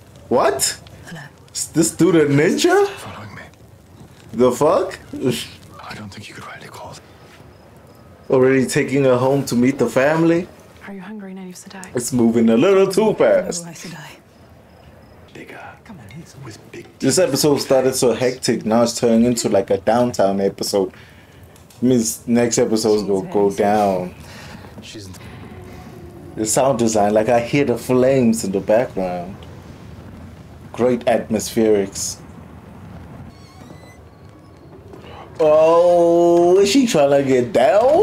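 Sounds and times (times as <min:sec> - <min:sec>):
crackling fire: 0:00.0 - 0:38.0
faint high squeaks: 0:33.3 - 0:35.5.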